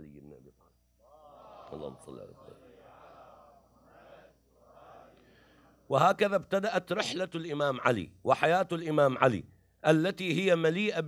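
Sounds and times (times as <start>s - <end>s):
man speaking: 0.0s - 0.4s, 5.9s - 11.0s.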